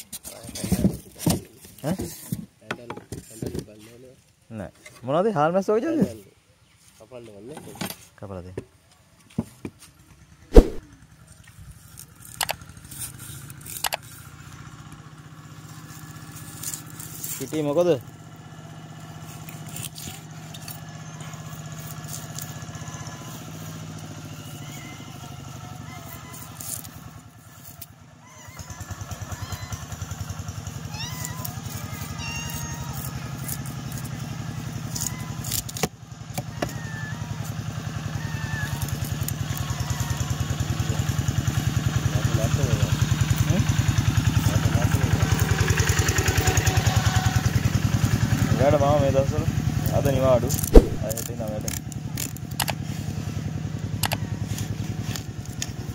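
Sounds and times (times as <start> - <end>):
knife chopping on wooden board: 10.5 - 10.8, 50.7 - 51.1
motorcycle engine running: 28.5 - 35.0, 36.0 - 55.9.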